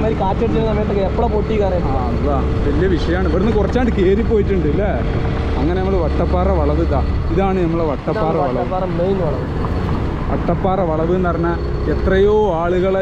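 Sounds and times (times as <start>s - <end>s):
man talking: 0.0s - 9.4s, 10.3s - 13.0s
motorcycle engine rumble: 0.0s - 13.0s.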